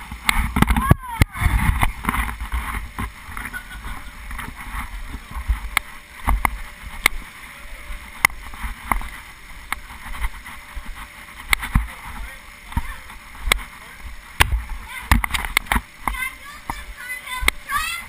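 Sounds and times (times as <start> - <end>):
sharp clicks and knocks: 14.4 - 16.8.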